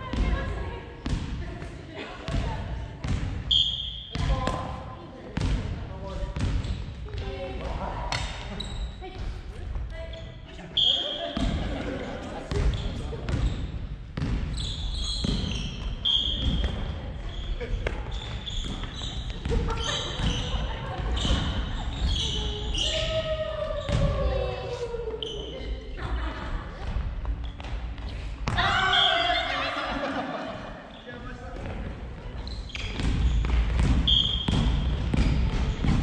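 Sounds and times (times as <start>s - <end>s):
sneaker squeaks: 3.4s - 4.8s, 6.3s - 7.4s, 8.1s - 11.7s, 12.5s - 25.9s, 27.2s - 29.6s, 30.8s - 36.0s.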